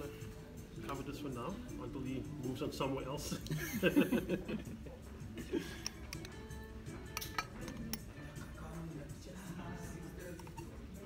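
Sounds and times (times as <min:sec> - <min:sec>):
background music: 0:00.0 - 0:11.0
glass clinking: 0:05.8 - 0:08.5.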